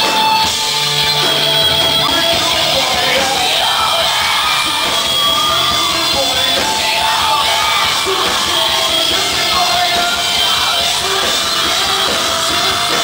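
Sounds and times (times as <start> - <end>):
live rock band playing: 0.0 - 13.0
singer yelling: 1.8 - 13.0.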